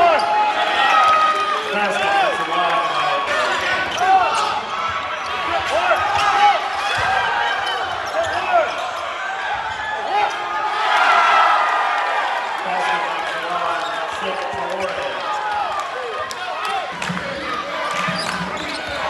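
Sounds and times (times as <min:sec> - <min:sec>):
sneakers squeaking on hardwood: 0:18.0 - 0:19.0.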